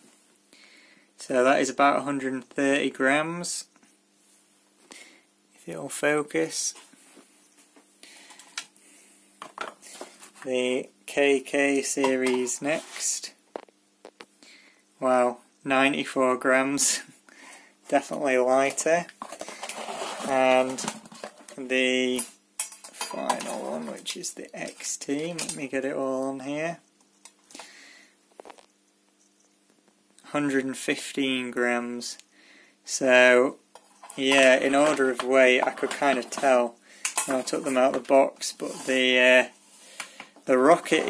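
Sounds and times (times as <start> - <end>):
wires rustling: 17.9 - 26.4, 33.7 - 41.0.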